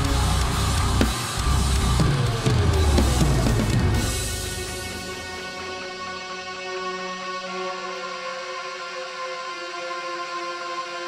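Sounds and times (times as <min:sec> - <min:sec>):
bass drum: 0:00.0 - 0:05.2
snare and cymbal hits: 0:00.0 - 0:05.8
heavy metal recording: 0:00.0 - 0:08.3.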